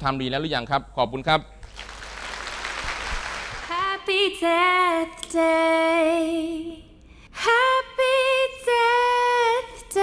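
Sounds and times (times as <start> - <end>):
audience applauding: 1.6 - 3.7.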